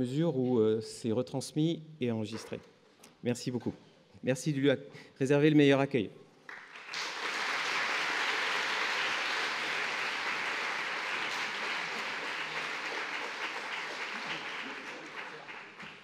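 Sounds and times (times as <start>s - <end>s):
audience applauding: 6.5s - 16.0s.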